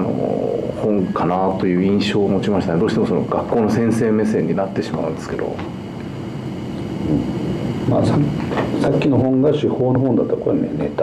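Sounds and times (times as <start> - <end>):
man speaking: 0.0 - 5.7, 7.0 - 11.0.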